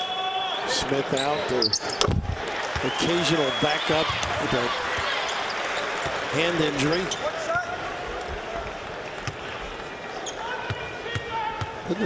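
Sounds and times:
arena crowd murmur: 0.0s - 12.0s.

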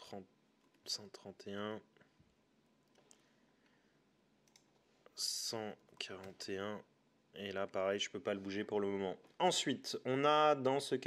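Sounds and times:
faint computer mouse clicks: 4.4s - 4.8s.

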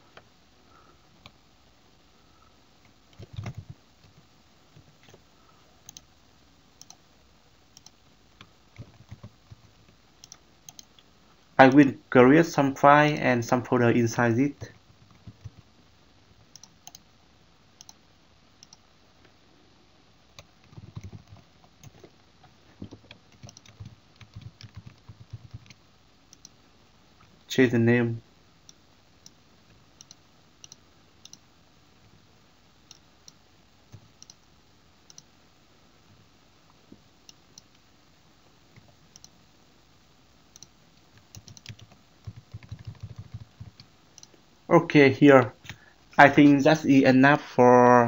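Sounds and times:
low steady hiss: 0.0s - 48.0s
faint computer mouse clicks: 5.8s - 6.1s, 6.8s - 7.0s, 7.8s - 8.9s, 9.8s - 11.1s, 16.5s - 17.0s, 17.8s - 18.0s, 18.6s - 18.8s, 25.6s - 26.6s, 30.0s - 31.4s, 32.9s - 34.4s, 35.1s - 35.3s, 38.8s - 39.4s, 40.6s - 42.0s
mouse and keyboard clicks: 10.2s - 11.0s, 22.8s - 26.6s.

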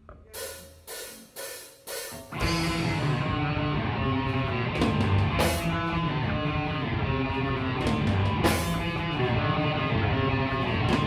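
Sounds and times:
heavy metal band playing: 2.0s - 11.0s
distorted electric guitar riffing: 2.2s - 11.0s.

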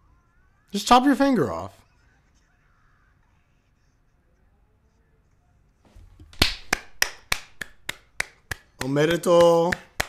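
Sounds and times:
person clapping hands: 6.2s - 10.0s.

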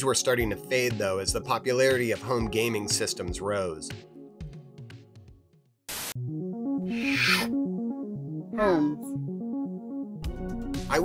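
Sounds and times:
synthesizer arpeggio: 6.2s - 10.7s.

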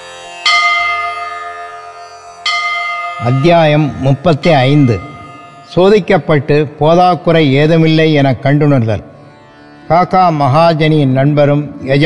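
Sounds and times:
bell ringing: 0.0s - 7.7s
sustained low drone notes: 0.0s - 12.0s.

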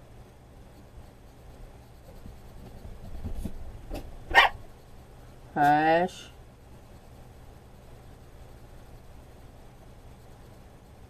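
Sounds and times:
small dog barking: 4.3s - 4.6s.

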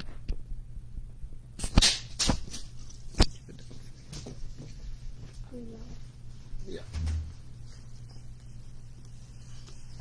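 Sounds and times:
low steady hum: 2.6s - 10.0s.

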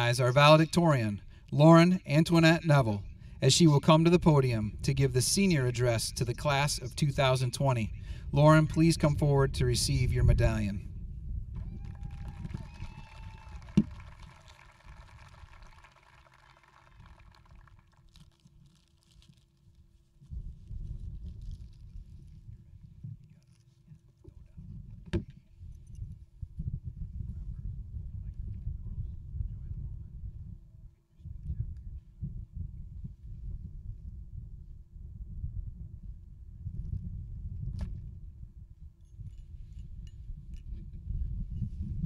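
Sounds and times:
wind buffeting microphone: 7.8s - 15.8s, 20.2s - 23.2s, 24.3s - 42.0s.

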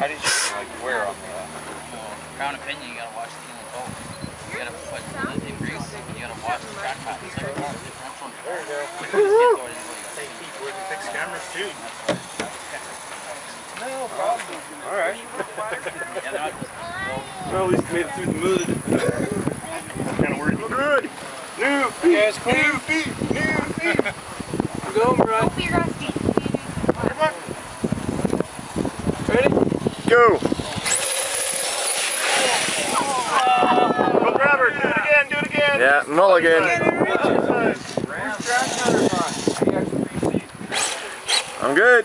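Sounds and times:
faint voices: 0.0s - 42.0s
people talking outdoors: 0.0s - 42.0s
rc truck splashing through mud: 29.5s - 33.7s, 37.7s - 39.8s, 40.5s - 42.0s.

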